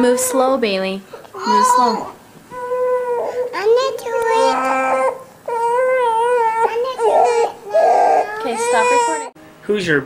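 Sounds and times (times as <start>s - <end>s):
young child crying: 1.4s - 9.4s.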